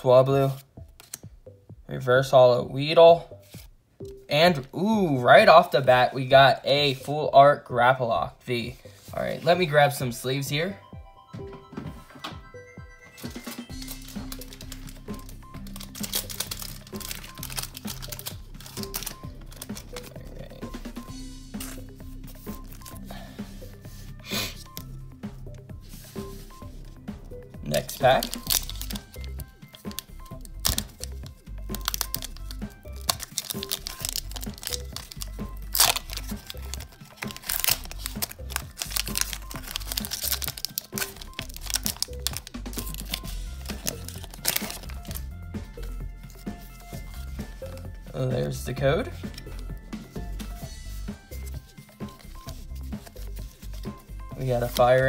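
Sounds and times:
quiet background music: 0:00.0 - 0:55.0
foil wrapper crinkling: 0:13.2 - 0:20.6, 0:27.7 - 0:47.9, 0:48.5 - 0:55.0
foil pack tearing: 0:13.7 - 0:20.6, 0:27.7 - 0:31.1, 0:31.7 - 0:47.8.

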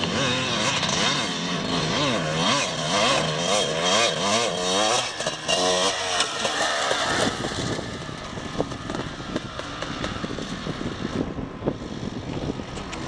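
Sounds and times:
dirt bike engine revving: 0:00.0 - 0:12.6.

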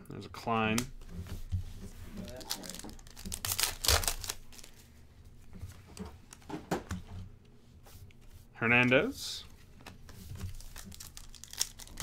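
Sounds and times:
cards rustling and clicking: 0:00.7 - 0:04.8, 0:09.5 - 0:12.0
foil pack tearing and crinkling: 0:02.2 - 0:04.7, 0:10.5 - 0:12.0.

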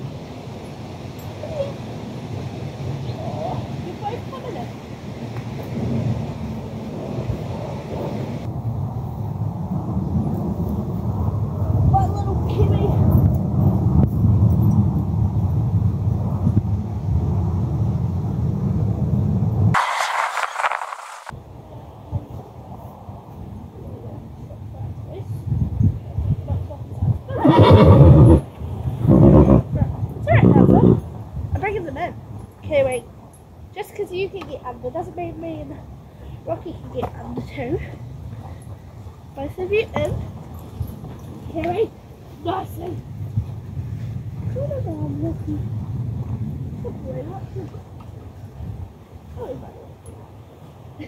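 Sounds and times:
wind buffeting microphone: 0:00.0 - 0:19.8, 0:21.2 - 0:51.0
horse whinnying: 0:27.4 - 0:28.4.

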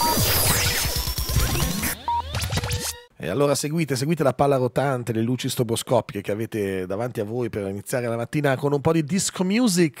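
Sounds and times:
electronic jingle music: 0:00.0 - 0:03.1
record scratches: 0:00.0 - 0:03.1.

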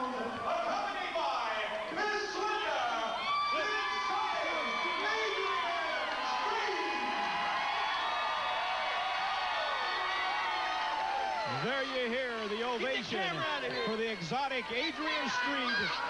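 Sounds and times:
crowd shouting and whooping: 0:00.0 - 0:16.0
man's voice close to microphone: 0:11.5 - 0:16.0.

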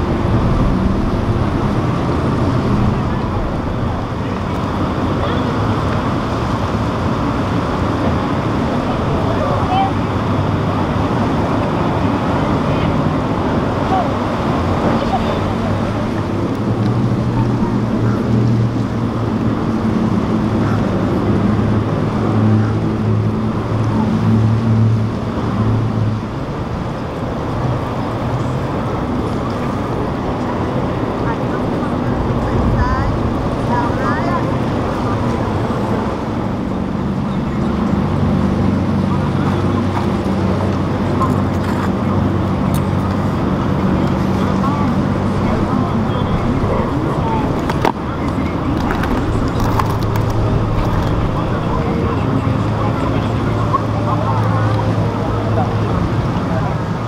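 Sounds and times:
powerboat engines: 0:00.0 - 0:57.0
rush of spray and wind: 0:00.0 - 0:57.0
background voices: 0:20.2 - 0:57.0.

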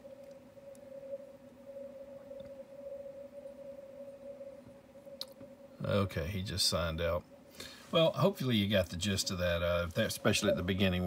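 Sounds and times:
steady wavering radio tone: 0:00.0 - 0:11.0.

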